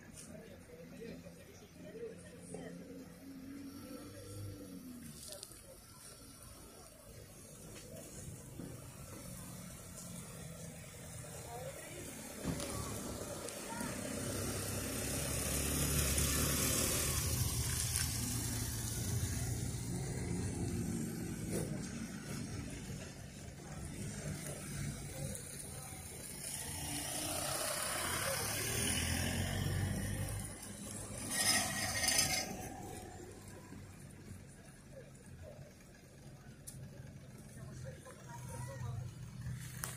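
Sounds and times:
cars passing: 0:00.0 - 0:36.3.

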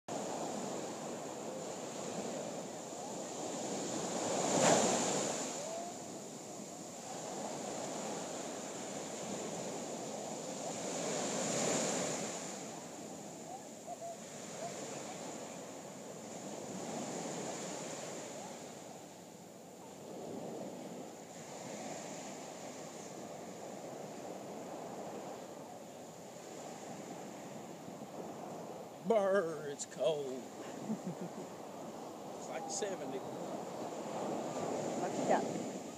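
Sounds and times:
small waves breaking on beach: 0:00.1 - 0:35.9.

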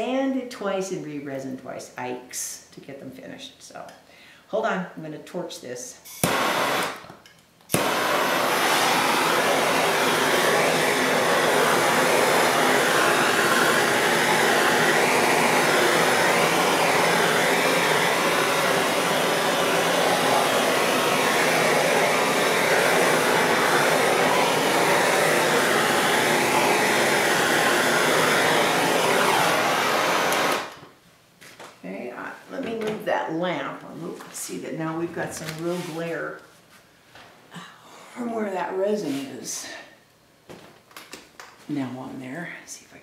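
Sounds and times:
gas torch hissing: 0:06.1 - 0:07.0, 0:07.7 - 0:30.8.

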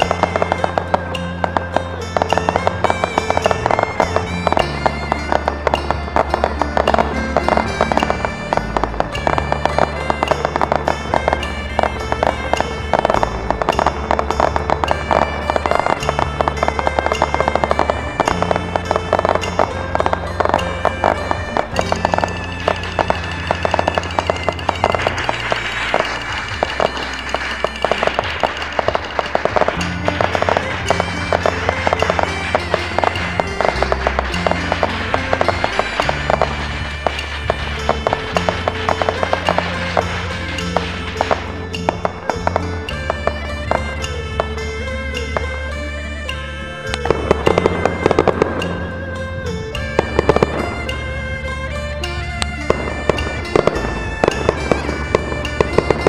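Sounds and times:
fireworks bursting and crackling: 0:00.0 - 0:56.0
music with deep bass line: 0:00.0 - 0:56.0.

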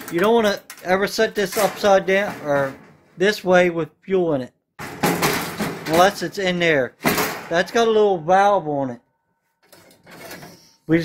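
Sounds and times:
sheet metal scraping and rattling: 0:00.0 - 0:03.2, 0:04.8 - 0:06.4, 0:09.6 - 0:10.8.

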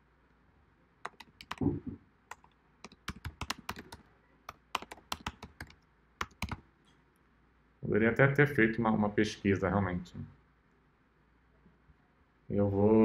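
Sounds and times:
typing on a computer keyboard: 0:01.0 - 0:01.6, 0:02.3 - 0:06.6.

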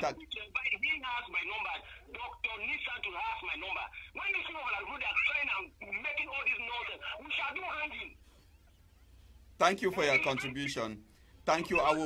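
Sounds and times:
person talking over telephone: 0:00.0 - 0:08.2, 0:09.6 - 0:12.0.

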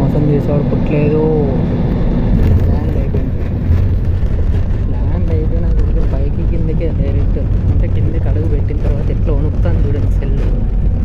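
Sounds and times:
jet engines and wheels rumbling: 0:00.0 - 0:11.0.

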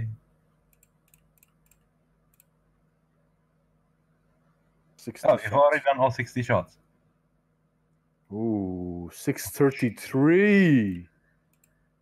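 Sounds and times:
faint sharp clicks: 0:00.7 - 0:02.6, 0:10.9 - 0:11.8.

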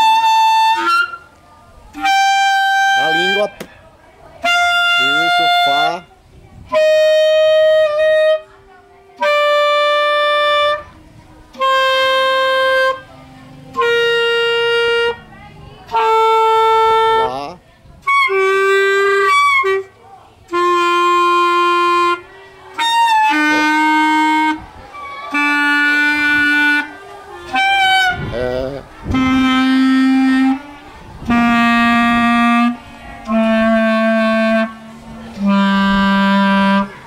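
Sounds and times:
clarinet holding a long note: 0:00.0 - 0:01.3, 0:01.9 - 0:03.6, 0:04.4 - 0:06.1, 0:06.7 - 0:37.0.

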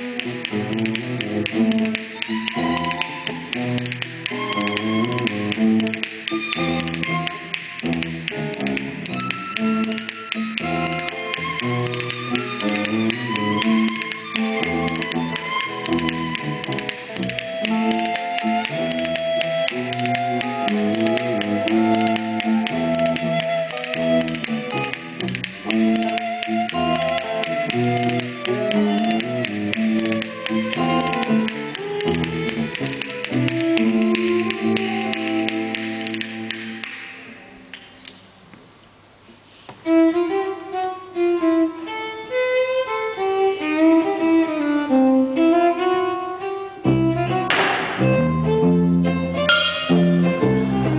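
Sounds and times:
violin and cello playing: 0:00.0 - 0:37.0, 0:39.8 - 0:50.9.

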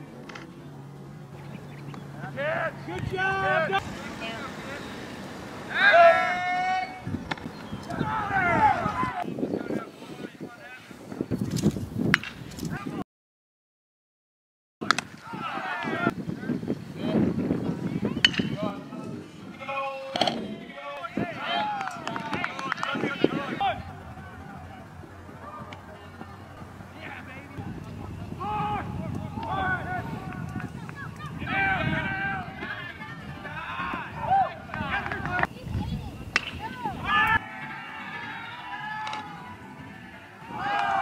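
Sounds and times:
players and spectators shouting: 0:01.4 - 0:10.7, 0:15.1 - 0:41.0
long wavering yell: 0:05.7 - 0:07.1
bat hitting ball crack: 0:07.2 - 0:08.0, 0:14.8 - 0:15.2, 0:18.2 - 0:18.6, 0:20.1 - 0:20.4, 0:36.3 - 0:36.7, 0:39.0 - 0:39.4.

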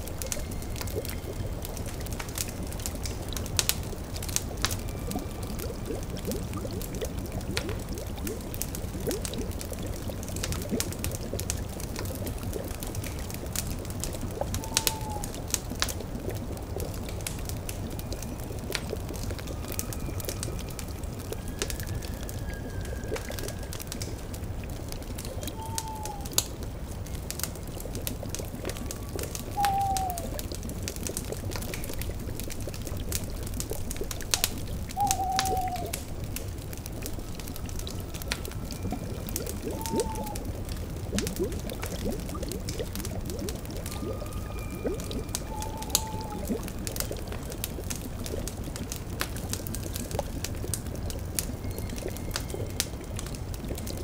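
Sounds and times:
cauldron bubbling: 0:00.0 - 0:54.0
fire crackling: 0:00.0 - 0:54.0
owl hooting: 0:14.6 - 0:15.4, 0:25.4 - 0:26.4, 0:29.4 - 0:30.4, 0:34.4 - 0:36.1, 0:39.6 - 0:40.5, 0:44.6 - 0:46.6.

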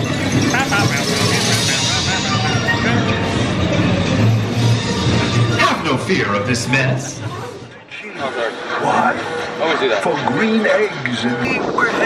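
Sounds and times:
low rumble of ride vehicle: 0:00.0 - 0:12.0
sound-effect glides: 0:00.0 - 0:12.0.

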